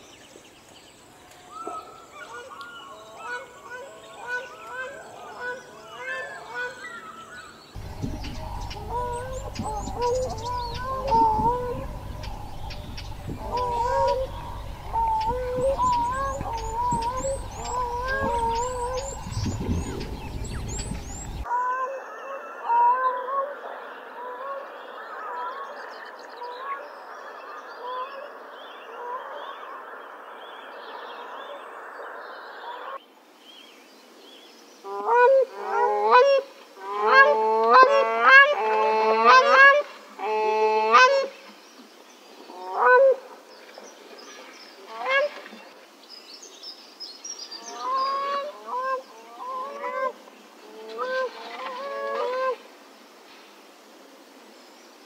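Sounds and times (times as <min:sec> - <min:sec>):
cranes honking: 0:07.8 - 0:21.4.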